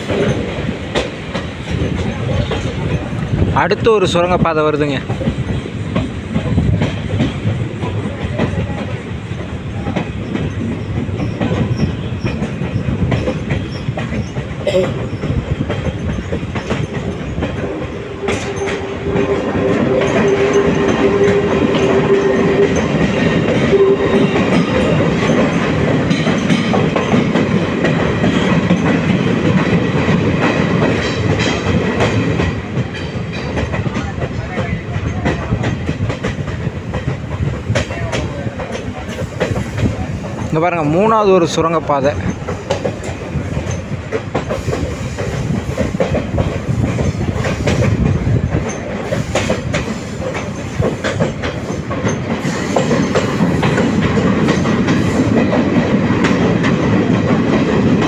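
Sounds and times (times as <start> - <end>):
train wheels rumbling and clattering: 0.0 - 58.0.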